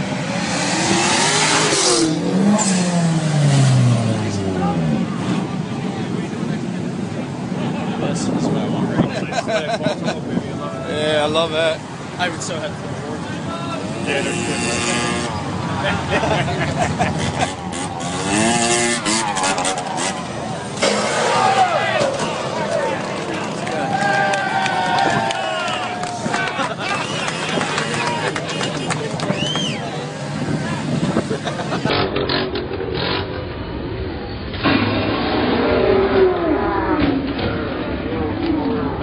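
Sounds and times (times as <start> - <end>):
motorcycle engine revving: 0.0 - 5.6, 13.9 - 15.7, 17.0 - 22.6, 30.1 - 39.0
street noise: 0.0 - 39.0.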